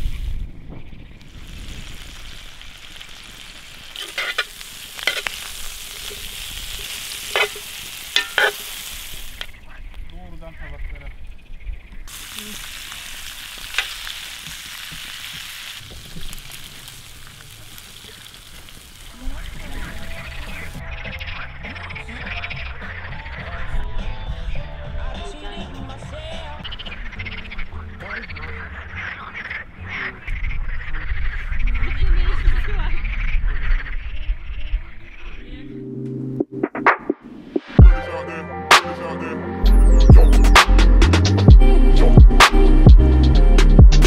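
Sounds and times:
campfire crackling: 0.0s - 33.5s
frogs croaking: 0.4s - 14.7s, 15.8s - 24.6s, 26.6s - 35.8s.

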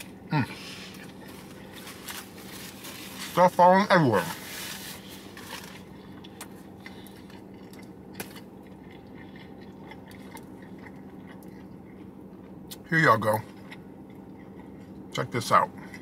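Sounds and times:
person chewing: 0.0s - 3.4s, 4.3s - 16.0s
steady low hum: 0.0s - 16.0s.

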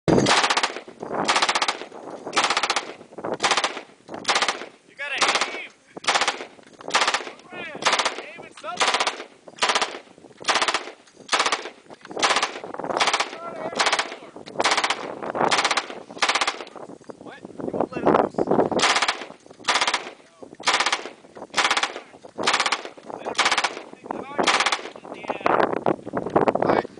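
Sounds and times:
machine gun firing bursts: 0.2s - 16.7s, 18.8s - 25.0s.

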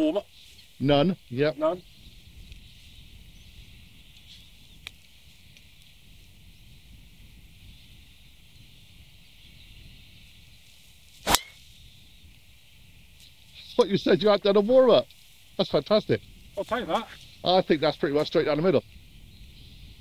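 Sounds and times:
outdoor background noise: 0.0s - 20.0s
golf club striking ball: 11.2s - 11.6s.

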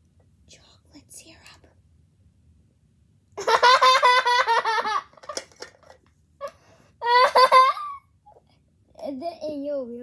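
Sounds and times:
child laughing: 3.4s - 5.3s, 7.0s - 8.1s.

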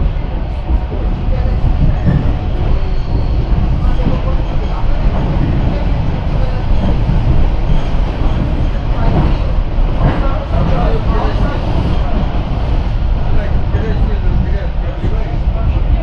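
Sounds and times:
train wheels rumbling on rails: 0.0s - 16.0s.

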